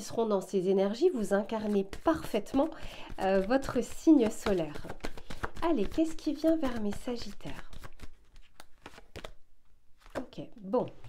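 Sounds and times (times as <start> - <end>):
quiet card handling: 1.4 - 9.4
cards shuffling clicks: 1.6 - 9.4.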